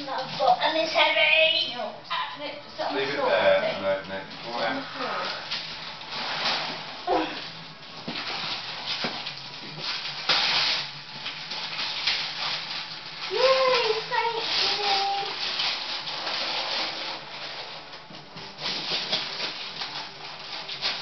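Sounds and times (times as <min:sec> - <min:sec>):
wrapping paper crackling and tearing: 0:00.0 - 0:01.2, 0:03.0 - 0:21.0.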